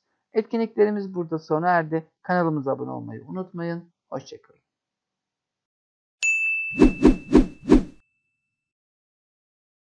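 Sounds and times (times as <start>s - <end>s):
bright ringing ding: 6.2s - 7.3s.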